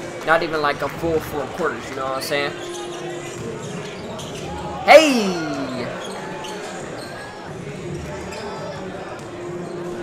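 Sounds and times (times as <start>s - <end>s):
crowd murmur: 4.8s - 6.3s
man exclaiming: 4.9s - 6.0s.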